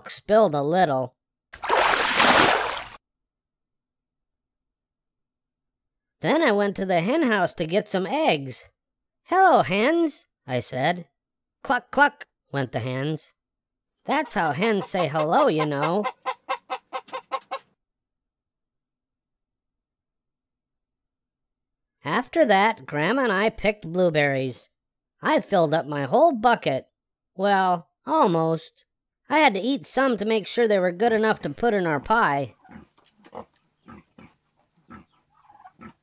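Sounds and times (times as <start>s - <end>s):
man reading aloud: 0.0s - 1.1s, 6.2s - 8.7s, 9.3s - 11.0s, 11.7s - 13.3s, 14.1s - 16.1s, 22.0s - 26.8s, 27.4s - 32.6s
hens clucking: 14.1s - 17.7s, 34.9s - 35.9s.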